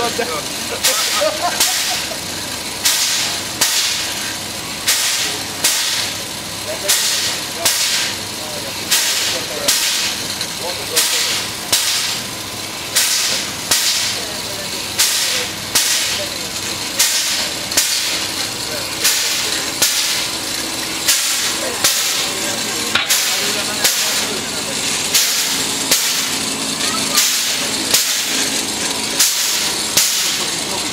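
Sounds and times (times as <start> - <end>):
steam locomotive puffing: 0.0 - 30.9.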